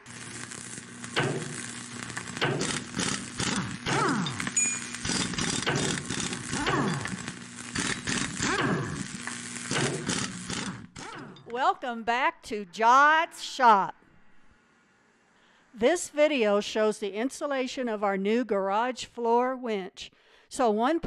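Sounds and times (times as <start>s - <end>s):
crackling sizzling sparks: 0.0s - 12.0s
steady electric hum: 0.0s - 18.4s.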